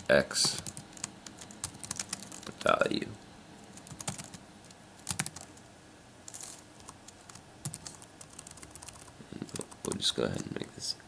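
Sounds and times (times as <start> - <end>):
typing on computer keyboard: 0.4 - 2.5, 3.8 - 4.4, 5.0 - 5.6, 6.8 - 10.5.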